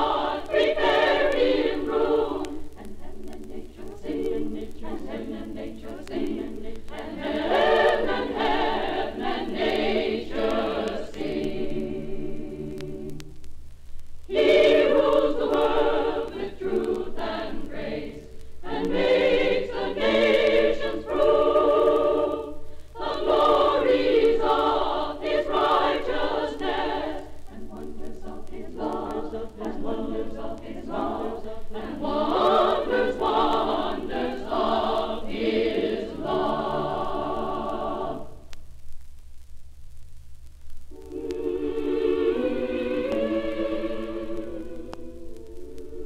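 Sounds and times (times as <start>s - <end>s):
women's choir singing: 0.0s - 13.3s, 14.3s - 38.5s, 40.9s - 46.0s
low hum: 36.0s - 46.0s.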